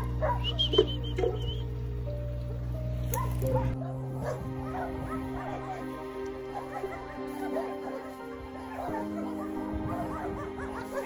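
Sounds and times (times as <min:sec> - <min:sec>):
dogs barking and yipping: 0:00.0 - 0:01.8, 0:02.4 - 0:11.0
music with held notes: 0:00.0 - 0:11.0.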